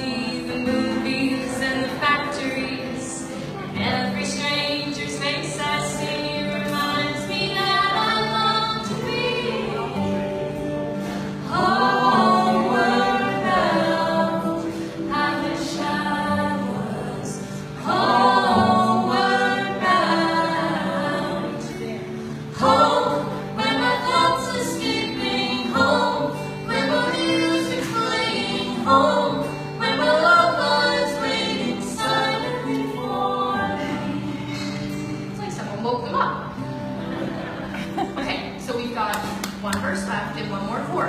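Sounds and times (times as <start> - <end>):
voices singing in harmony: 0.0 - 35.4
woman singing: 0.0 - 36.1
acoustic guitar: 0.0 - 41.0.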